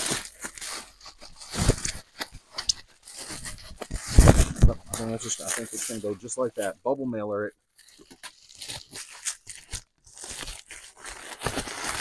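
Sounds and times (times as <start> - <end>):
bubble wrap rustling and crinkling: 0.0 - 7.0, 7.7 - 12.0.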